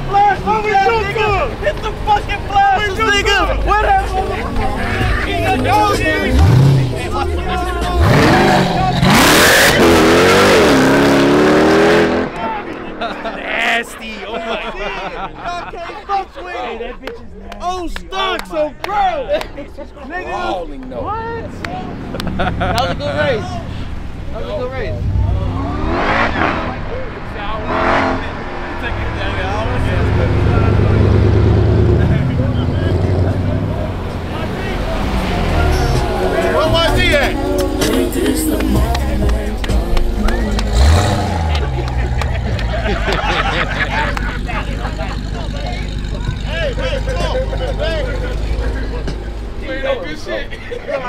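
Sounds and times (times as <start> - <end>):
vehicle engine idling: 0.0 - 9.4, 28.2 - 51.0
people talking and calling out: 0.0 - 51.0
car driving past: 21.4 - 50.7.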